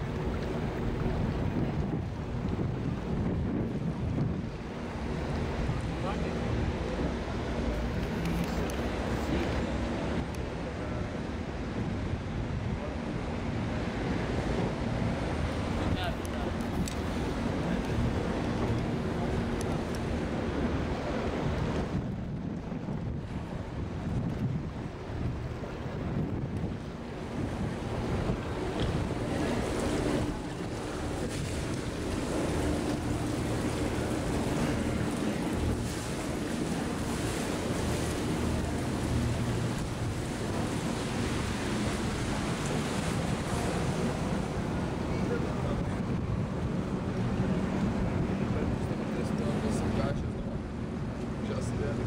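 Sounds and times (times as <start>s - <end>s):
boat engine humming: 0.0s - 52.0s
water rushing along hull: 0.0s - 52.0s
wind buffeting microphone: 0.0s - 52.0s.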